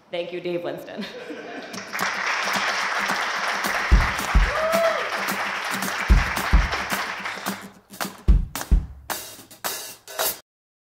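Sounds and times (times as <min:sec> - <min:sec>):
audience applauding: 0:01.6 - 0:08.2
deep drum hits: 0:03.9 - 0:04.8, 0:06.1 - 0:07.0, 0:08.2 - 0:09.2.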